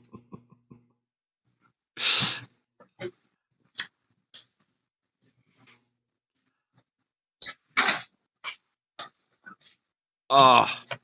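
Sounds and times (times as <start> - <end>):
man laughing: 0.0 - 0.9.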